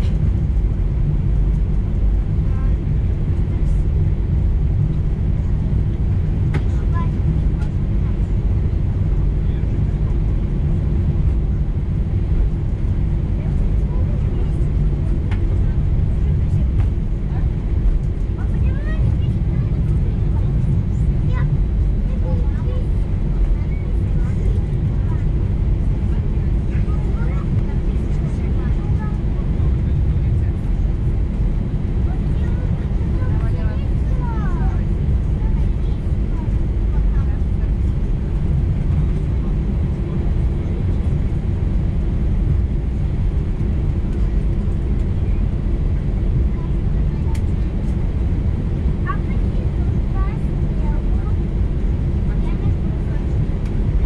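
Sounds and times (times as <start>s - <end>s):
jet engines idling low rumble: 0.0s - 54.0s.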